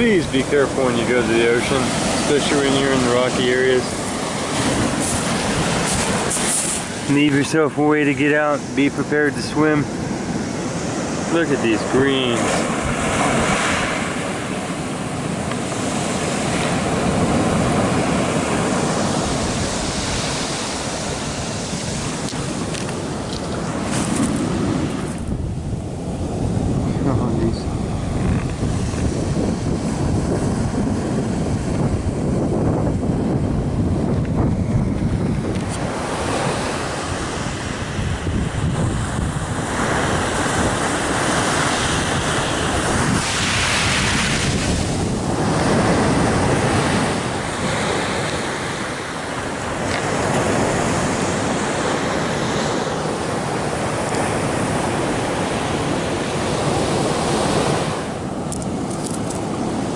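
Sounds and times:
surf on a pebble beach: 0.0 - 59.9
wind buffeting microphone: 0.0 - 59.9.

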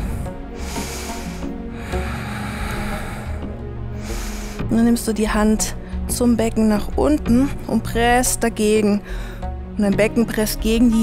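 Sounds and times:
hissy breaths close to microphone: 0.0 - 4.7
soft background music: 0.0 - 11.0.

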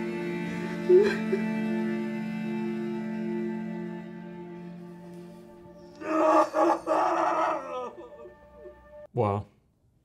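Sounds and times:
soft sustained score music: 0.0 - 9.1
man wailing and sobbing: 6.0 - 8.8.

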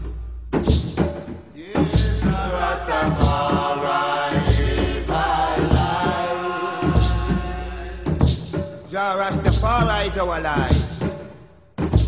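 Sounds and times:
deep drum booming: 0.0 - 8.8
voices chanting held notes: 1.6 - 8.5.

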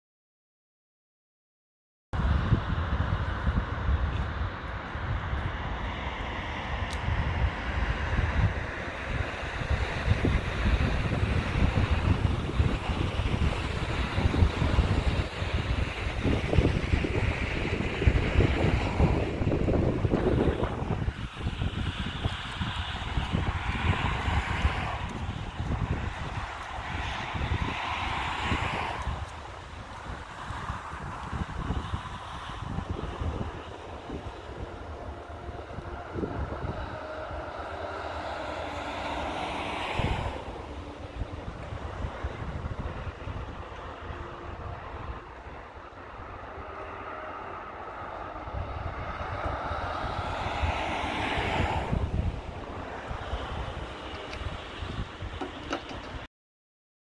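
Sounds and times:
vehicles passing: 2.2 - 56.3
wind buffeting microphone: 2.2 - 56.3.

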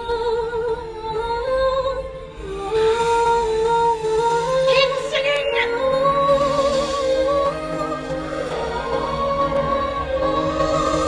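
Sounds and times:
film score music: 0.0 - 11.0
woman singing wordlessly: 0.0 - 11.0.

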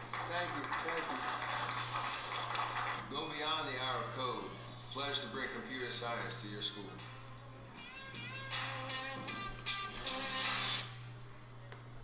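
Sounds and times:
people applauding: 0.0 - 3.1
low electrical hum: 0.0 - 12.0.

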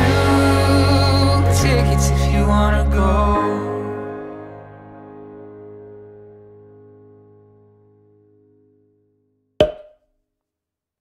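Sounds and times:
sharp percussive hit with ringing tail: 9.6 - 10.0.

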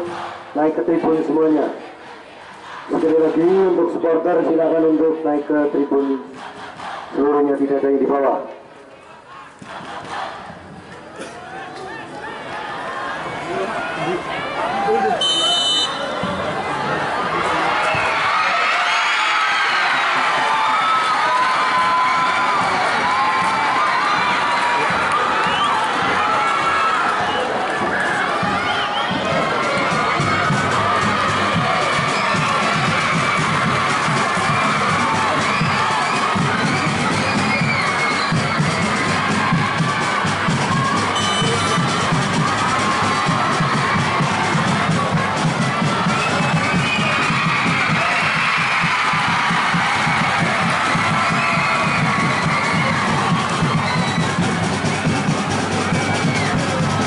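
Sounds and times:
crowd cheering and shouting: 0.0 - 57.0.

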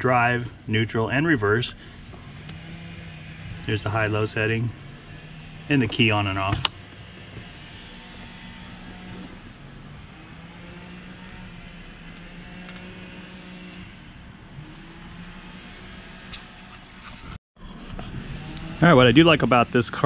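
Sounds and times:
distant motor hum: 0.0 - 17.1
outdoor background noise: 0.0 - 20.0.

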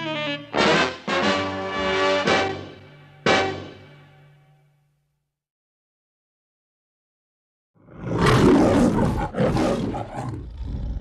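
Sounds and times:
lion growling: 7.8 - 11.0
lion roaring: 7.8 - 11.0.

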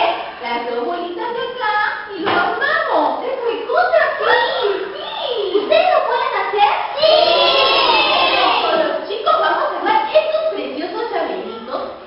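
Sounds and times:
woman's voice: 0.0 - 4.9, 8.4 - 12.0
young children's voices: 4.0 - 9.1.

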